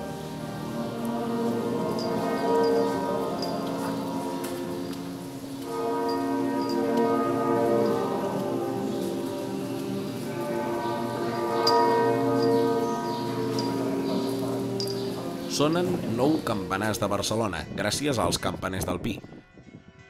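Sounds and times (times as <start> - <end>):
church bells ringing: 0.0 - 17.5.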